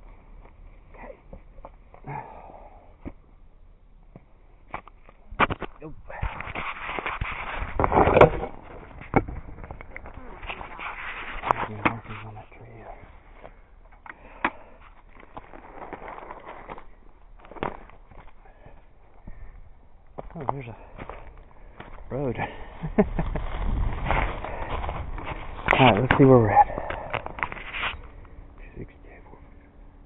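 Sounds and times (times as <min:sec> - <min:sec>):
footsteps crunching through dry leaves: 0:15.1 - 0:18.4, 0:20.2 - 0:28.0.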